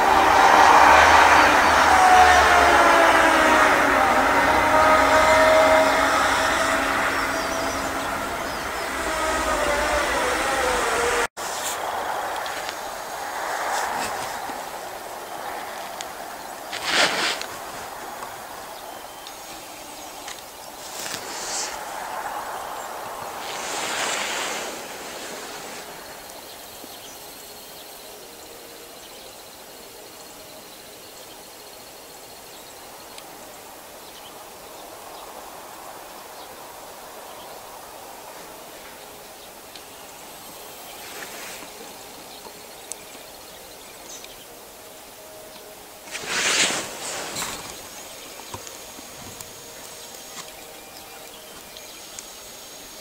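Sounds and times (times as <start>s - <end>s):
outdoor background noise: 0.0s - 53.0s.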